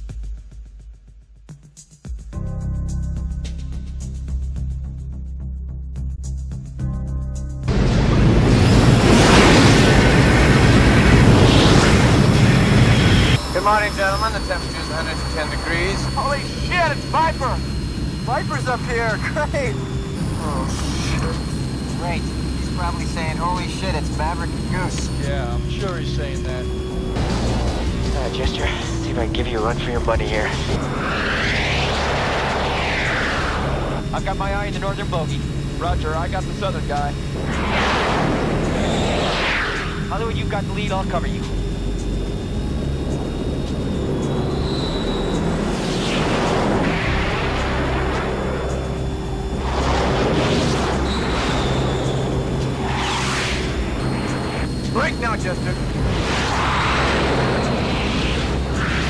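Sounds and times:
low engine drone: 5.9s - 59.0s
rushing jet roar: 7.7s - 59.0s.

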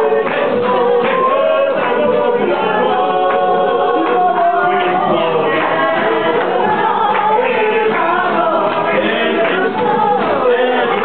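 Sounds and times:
group singing: 0.0s - 11.0s.

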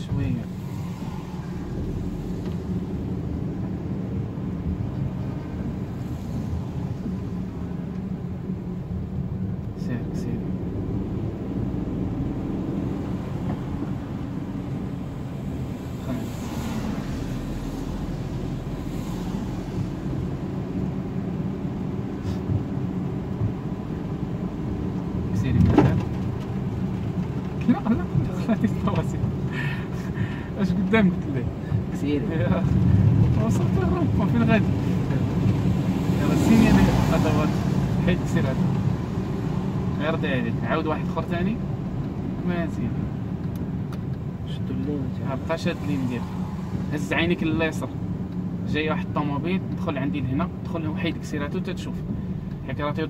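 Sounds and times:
car engine and road noise: 0.0s - 53.0s.

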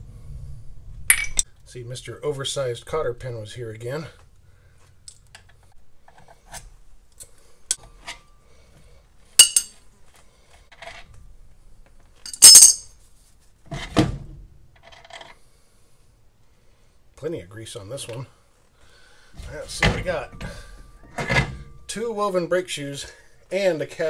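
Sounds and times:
light metallic ticks and clinks: 9.4s - 9.8s.

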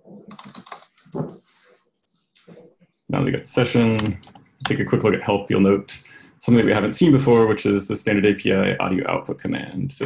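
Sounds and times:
computer keyboard typing: 0.3s - 1.3s.

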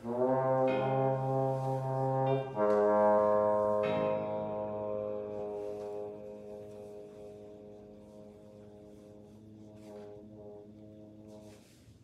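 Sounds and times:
french horn playing held notes: 0.0s - 12.0s.

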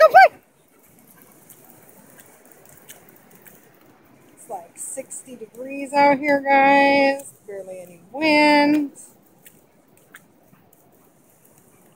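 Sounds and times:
distant surf: 0.0s - 11.9s
light ticks: 0.6s - 6.5s, 7.1s - 11.9s.

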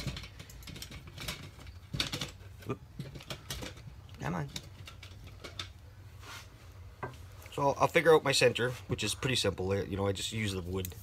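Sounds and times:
small objects clicking and tapping: 0.0s - 5.8s.

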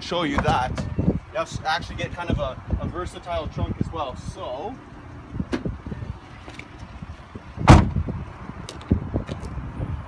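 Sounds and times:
car door thud: 7.6s - 8.1s.

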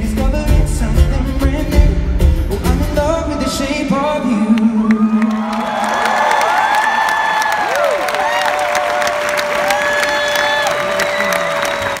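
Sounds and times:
crowd cheering and applauding: 4.4s - 12.0s.

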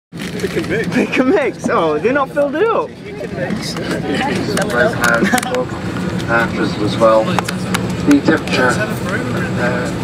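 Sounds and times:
airliner cabin drone: 0.2s - 10.0s
indistinct voices talking: 0.2s - 10.0s.

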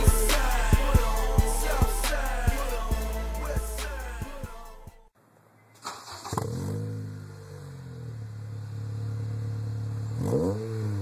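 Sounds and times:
car engine revving and idling: 0.0s - 4.9s, 6.1s - 11.0s.

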